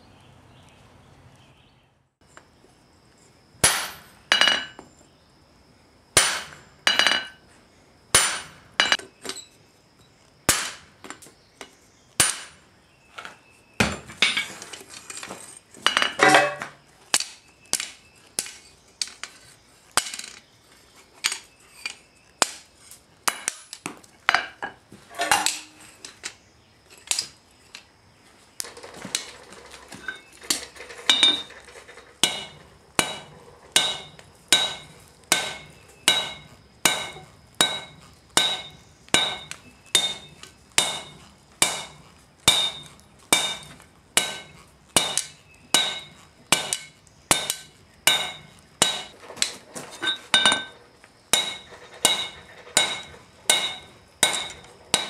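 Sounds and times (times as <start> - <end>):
hammer striking anvil: 3.6 - 4.8, 6.2 - 7.4, 8.2 - 9.0, 32.2 - 49.2, 50.0 - 55.0.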